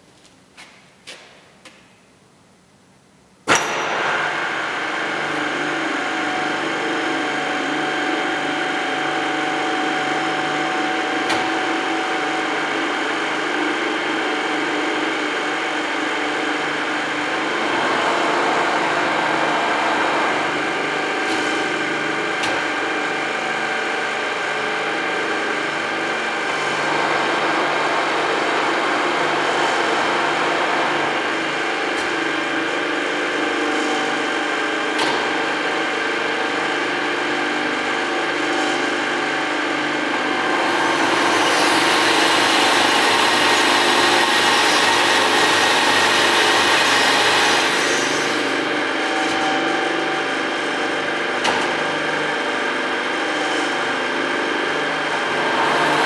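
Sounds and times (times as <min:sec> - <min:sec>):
milling machine whine: 0:03.6 - 0:56.0.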